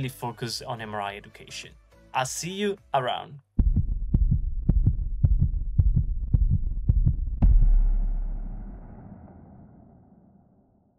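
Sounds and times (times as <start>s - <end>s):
heartbeat thumps: 3.6s - 8.6s
deep hit with low rumble: 3.6s - 10.6s.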